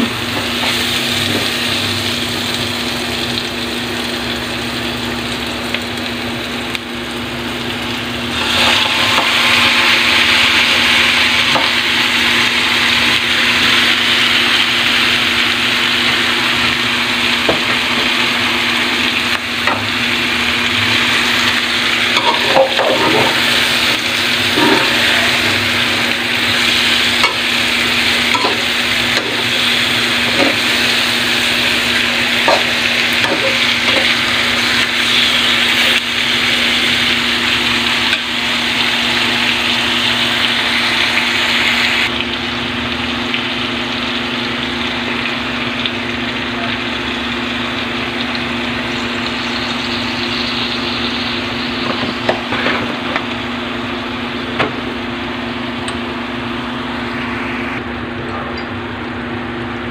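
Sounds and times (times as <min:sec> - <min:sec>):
meat sizzling in a wok: 0:00.0 - 0:57.6
steady low hum: 0:00.0 - 0:59.9.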